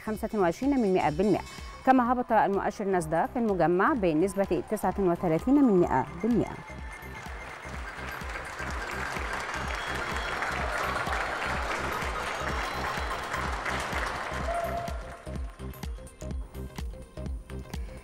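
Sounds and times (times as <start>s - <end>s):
background music with low beat: 0.0s - 18.0s
people applauding: 4.0s - 15.9s.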